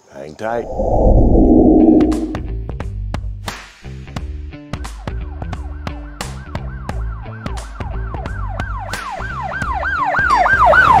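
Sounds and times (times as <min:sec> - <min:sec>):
siren sound effect sweeping down: 0:00.5 - 0:02.6.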